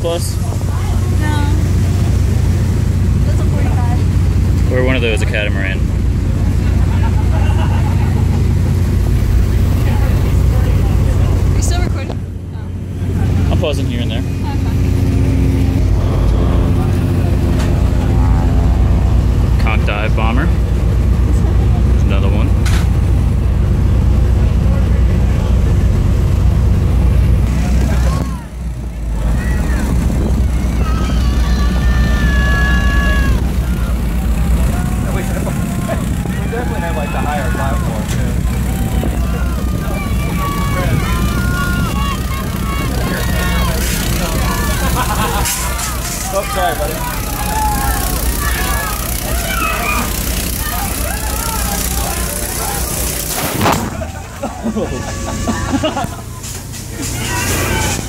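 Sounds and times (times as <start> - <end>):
boat engine running: 0.0 - 58.0
scattered voices: 27.5 - 58.0.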